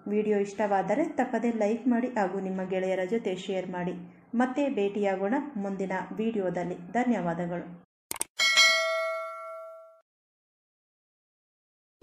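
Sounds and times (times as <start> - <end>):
bell ding: 8.4 - 10.0.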